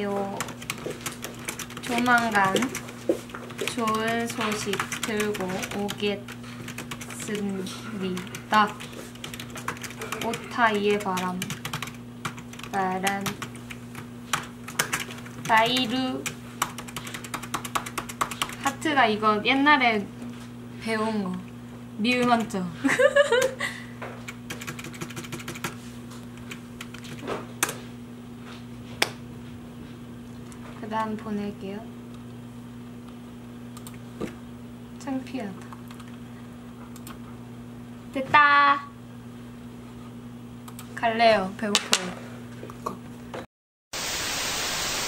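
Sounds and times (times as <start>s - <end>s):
computer keyboard typing: 0.0s - 18.8s, 24.3s - 25.8s, 26.4s - 27.7s, 35.8s - 36.2s
low electrical hum: 0.0s - 45.0s
person laughing: 22.8s - 24.0s
television static hiss: 44.0s - 45.0s.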